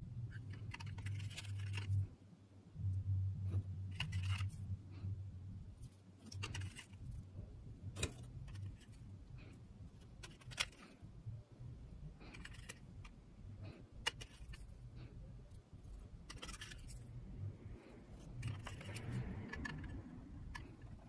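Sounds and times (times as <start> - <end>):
low steady hum: 0.0 - 21.0
rustling in a metal tin: 5.8 - 7.2, 15.8 - 17.1, 18.2 - 21.0.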